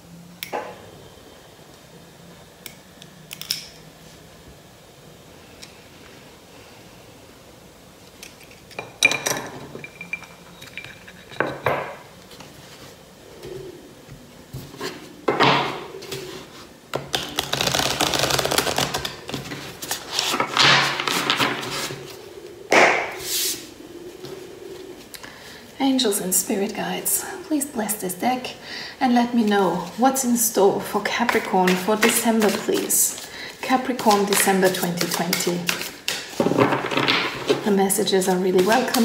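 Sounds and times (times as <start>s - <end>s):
cards rustling on table: 31.4s - 33.3s, 34.0s - 36.6s.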